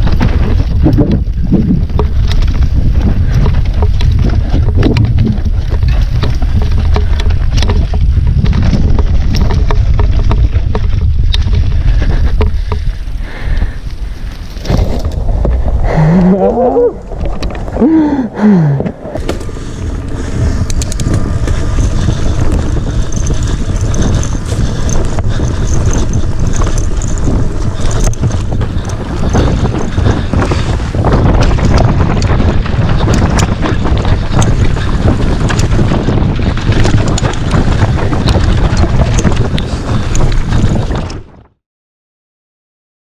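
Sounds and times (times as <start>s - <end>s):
wind buffeting microphone: 0.0s - 41.5s
bike clicking and rattling: 0.0s - 41.6s
bike tyre rumble: 0.0s - 41.6s.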